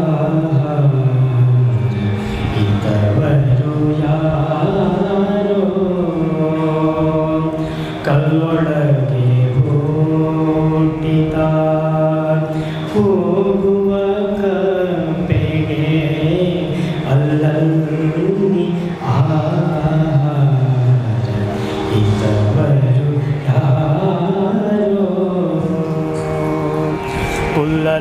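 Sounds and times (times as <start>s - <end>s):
man singing a devotional song: 0.0s - 28.0s.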